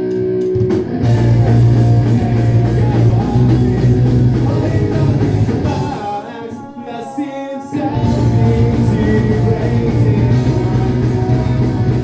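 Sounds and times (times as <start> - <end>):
punk-pop band playing live: 0.0 - 12.0.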